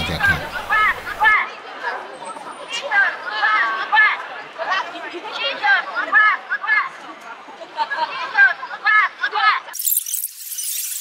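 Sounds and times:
street crowd noise: 0.0 - 9.8.

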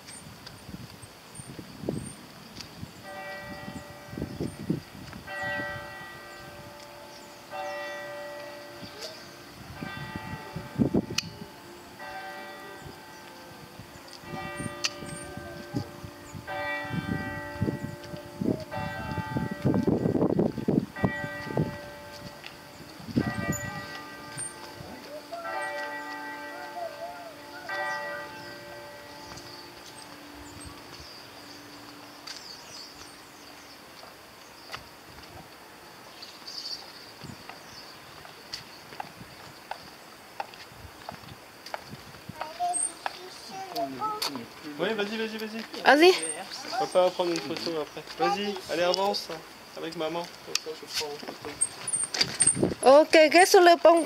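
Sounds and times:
bells ringing: 3.0 - 33.0.

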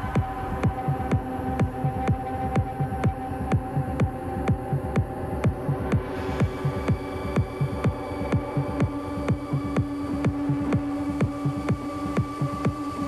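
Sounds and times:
kick drum: 0.0 - 13.0
techno music: 0.0 - 13.0.

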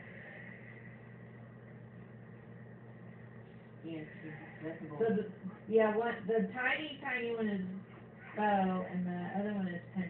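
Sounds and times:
faint high whine: 0.0 - 10.0
machinery hum: 0.0 - 10.0.

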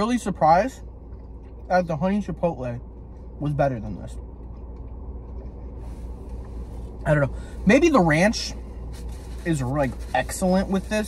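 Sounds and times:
car idling inside cabin: 0.0 - 11.0
faint rustling: 5.2 - 11.0.

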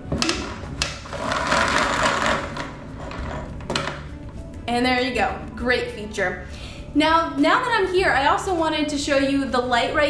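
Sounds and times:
cord reel knock: 0.2 - 4.0
cord reel whirring: 0.9 - 3.5.

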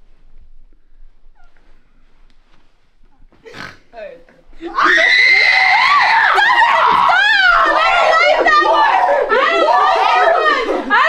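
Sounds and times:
young people shrieking and laughing: 4.6 - 11.0.

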